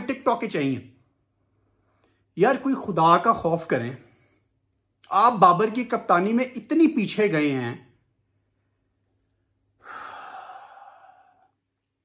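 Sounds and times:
man sighing: 9.8s - 11.5s.

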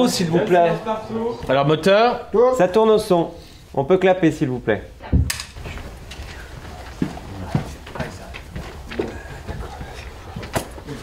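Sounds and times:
low voices: 5.7s - 11.0s.

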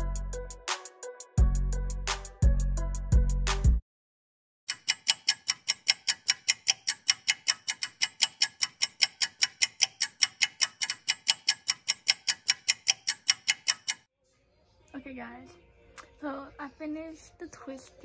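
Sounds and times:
rapid clock ticking: 4.7s - 14.1s.

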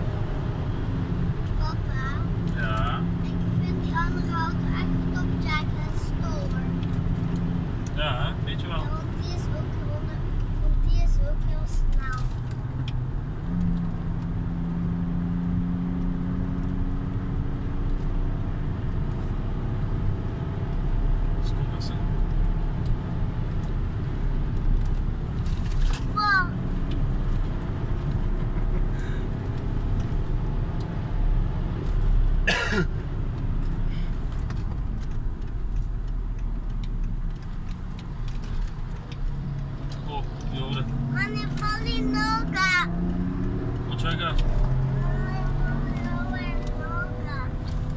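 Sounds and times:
car engine from inside cabin: 0.0s - 47.9s.

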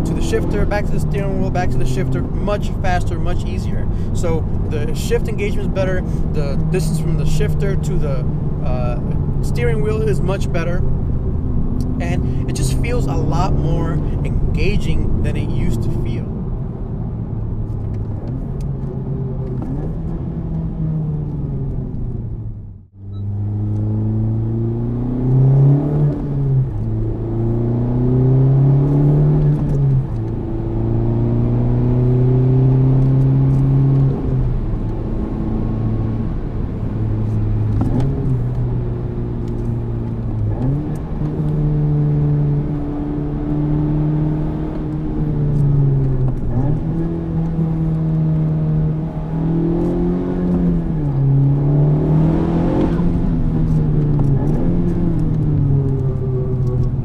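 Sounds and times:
car engine revving through gears: 0.0s - 16.7s, 17.4s - 22.4s, 23.0s - 57.0s.

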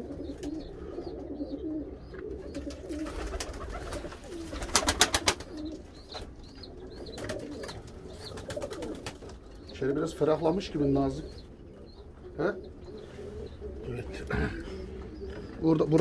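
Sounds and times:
pigeons cooing: 0.0s - 16.0s.

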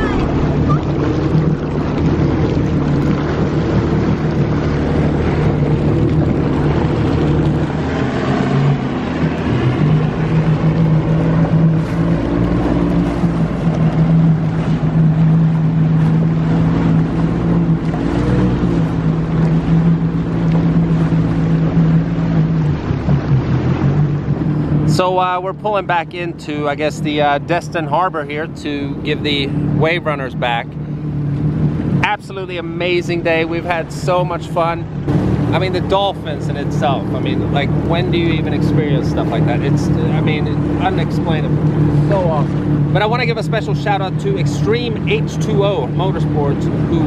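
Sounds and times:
personal watercraft engine humming: 0.0s - 47.0s
water noise: 0.0s - 47.0s.

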